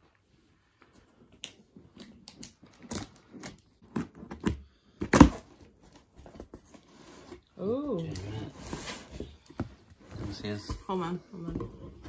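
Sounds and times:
packing tape ripping: 0:02.4 - 0:05.5.

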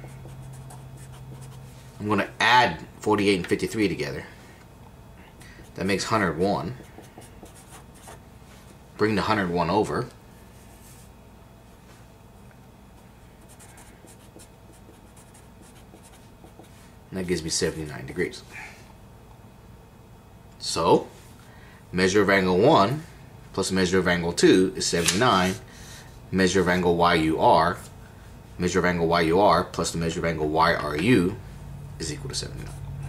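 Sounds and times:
marker writing on paper: 0:00.0 - 0:01.6, 0:06.7 - 0:08.2, 0:13.4 - 0:16.8
steady low hum: 0:00.0 - 0:33.0.

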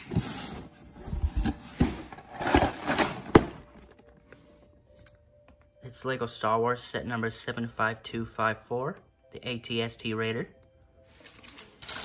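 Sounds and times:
cardboard flaps scraping and rustling: 0:00.0 - 0:03.8.

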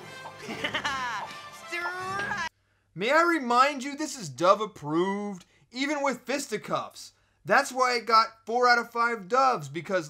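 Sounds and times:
cartoon background music: 0:00.0 - 0:02.5.

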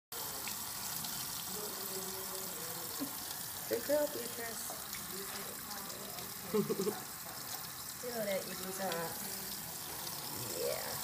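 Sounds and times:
water running into metal sink: 0:00.1 - 0:11.0.

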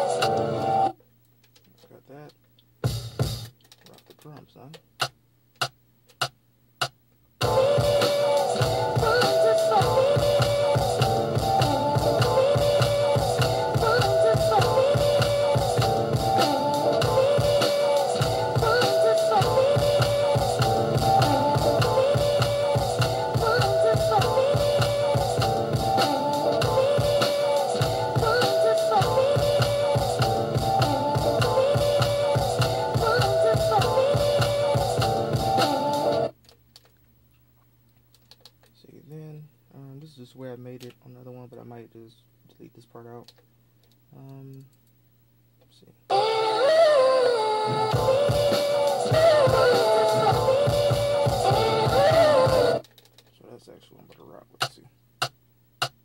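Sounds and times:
hip-hop beat: 0:00.0 - 0:00.9, 0:02.8 - 0:36.3, 0:46.1 - 0:52.9.

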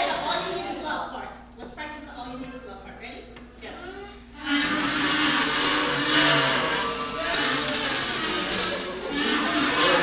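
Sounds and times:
maracas rattling: 0:03.6 - 0:10.0
kazoos buzzing a tune: 0:03.9 - 0:10.0.

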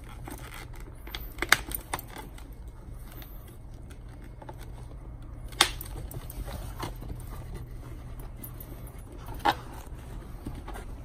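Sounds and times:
rustling: 0:00.0 - 0:11.0.

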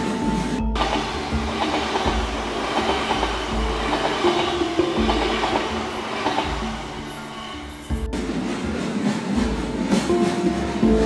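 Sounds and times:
train wheels rumbling on rails: 0:00.7 - 0:11.0
wheels knocking: 0:00.8 - 0:11.0.

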